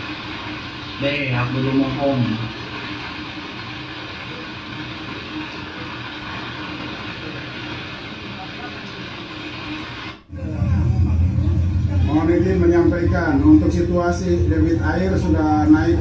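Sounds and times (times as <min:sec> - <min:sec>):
deep rumble: 0:10.3 - 0:16.0.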